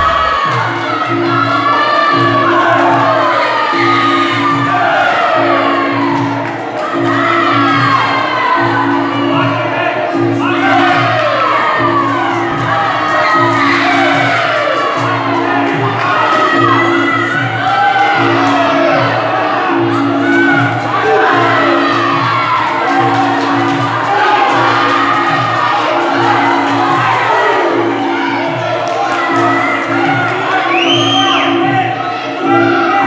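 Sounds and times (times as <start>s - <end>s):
crowd shouting and cheering: 0.0s - 33.0s.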